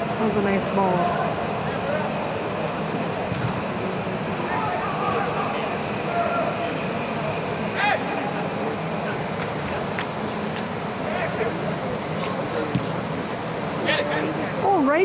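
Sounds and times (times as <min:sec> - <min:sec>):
distant shouts of players: 0:04.4 - 0:06.8.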